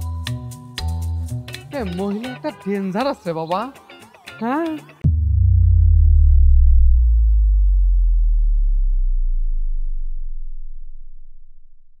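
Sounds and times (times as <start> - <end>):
synthesized bass tone sliding down: 5.0 - 12.0.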